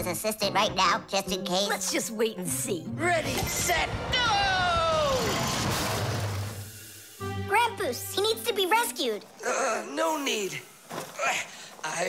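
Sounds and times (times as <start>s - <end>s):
cartoon cart rushing and rumbling: 3.8s - 6.5s.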